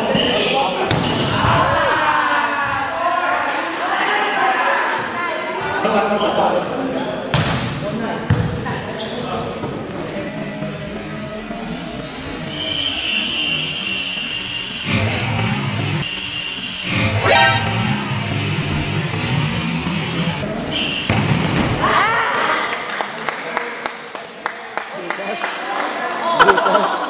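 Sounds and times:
high steady tone: 13.8s - 19.2s.

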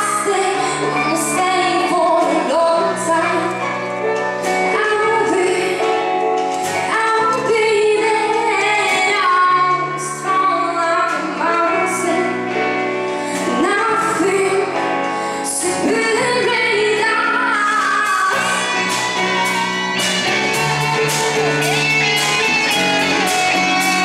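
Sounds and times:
woman singing: 0.0s - 3.8s, 4.5s - 20.9s
live pop band: 0.0s - 24.0s.

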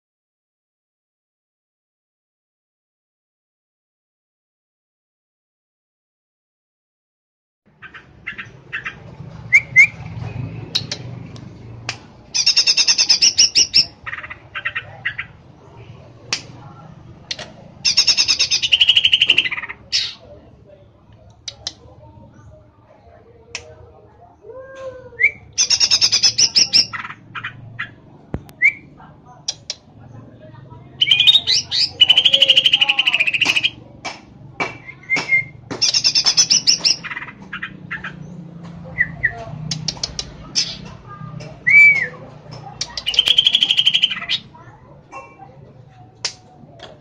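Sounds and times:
bird trilling: 7.8s - 10.0s, 12.3s - 15.4s, 17.3s - 20.3s, 25.2s - 28.8s, 31.0s - 33.8s, 34.8s - 38.4s, 42.8s - 44.6s.

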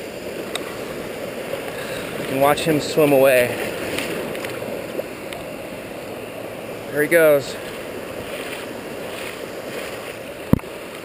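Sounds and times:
surf washing around legs: 0.0s - 11.0s.

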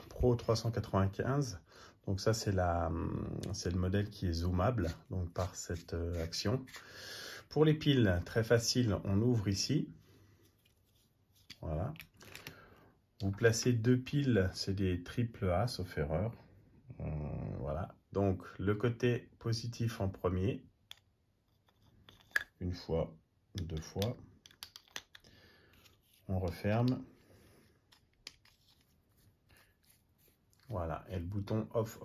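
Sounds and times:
batteries and flashlight clicking: 23.6s - 26.0s.

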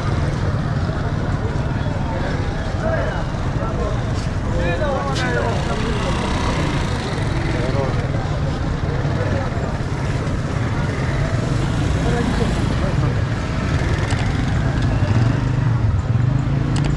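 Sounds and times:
crowd chatter: 0.0s - 16.9s
motorcycle engines running: 0.0s - 16.9s.

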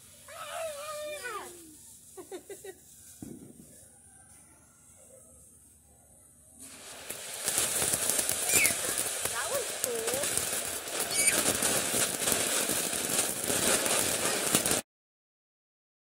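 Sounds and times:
firework crackling hiss: 0.0s - 4.3s, 6.6s - 14.8s
person calling out: 0.3s - 1.8s.

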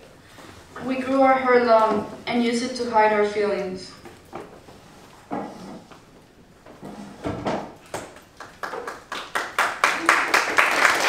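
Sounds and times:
group applauding: 8.2s - 11.0s.

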